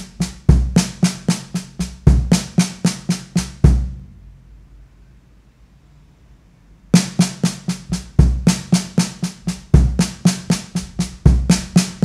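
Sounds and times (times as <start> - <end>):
snare drum strokes: 0.0 - 3.9, 7.0 - 12.0
bass drum kick: 7.9 - 8.7, 9.5 - 12.0.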